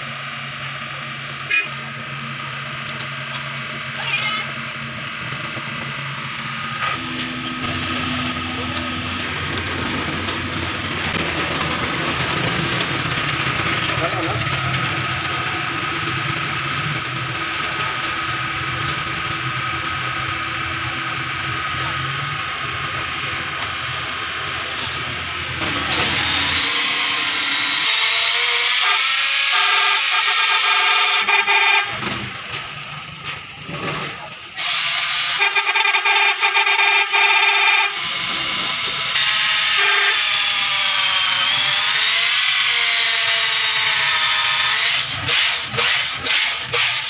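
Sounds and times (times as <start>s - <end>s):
electric drill motor whine: 14.5s - 31.4s, 34.6s - 36.2s, 37.2s - 47.0s.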